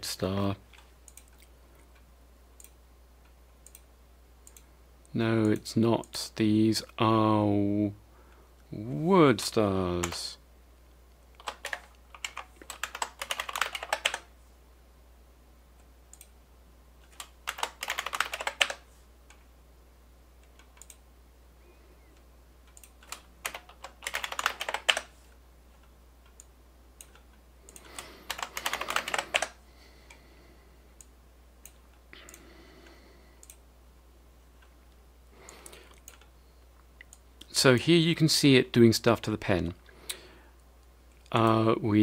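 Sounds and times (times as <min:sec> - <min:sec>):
low steady hum: 0:00.0 - 0:42.0
computer keyboard typing: 0:11.4 - 0:14.3, 0:17.0 - 0:18.8, 0:22.7 - 0:25.1, 0:26.3 - 0:29.6.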